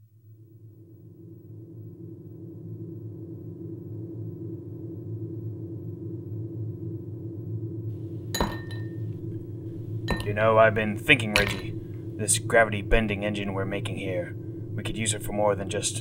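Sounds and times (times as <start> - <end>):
low hum: 0.0 - 16.0
glass clink: 8.4 - 9.0, 10.1 - 10.4, 11.3 - 11.7.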